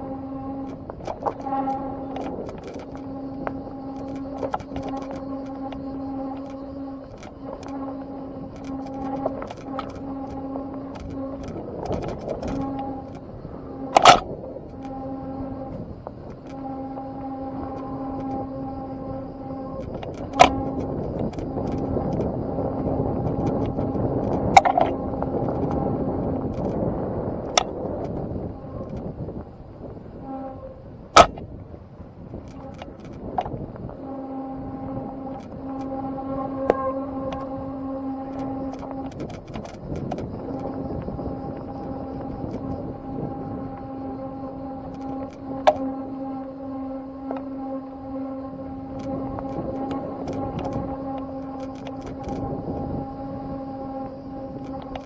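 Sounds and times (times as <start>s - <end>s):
bicycle tyre noise on dirt trail: 0.0s - 55.0s
humming whine: 0.0s - 55.0s.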